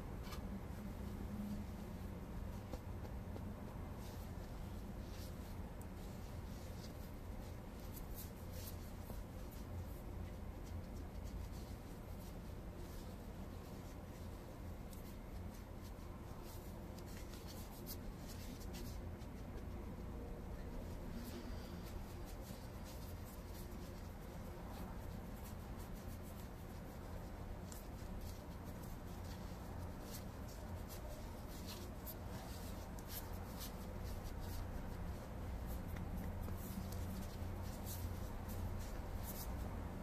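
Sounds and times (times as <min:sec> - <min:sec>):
scratchy brushes: 0:00.0 - 0:40.0
towel rubbing in powder: 0:20.5 - 0:40.0.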